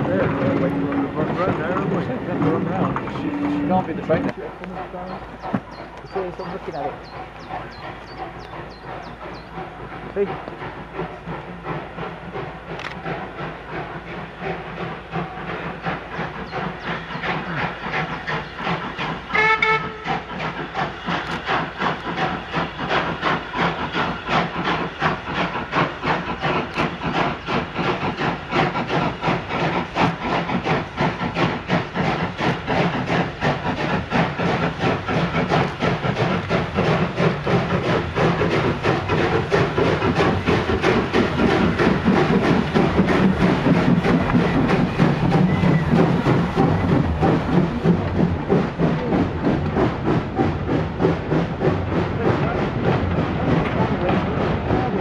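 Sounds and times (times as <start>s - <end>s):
steam train exhaust beats: 0.0s - 55.0s
steam whistle blast: 19.3s - 20.1s.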